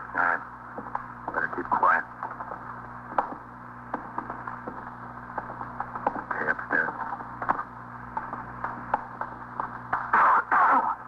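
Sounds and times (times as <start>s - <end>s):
low steady hum: 0.0s - 11.0s
footsteps walking: 0.7s - 10.2s.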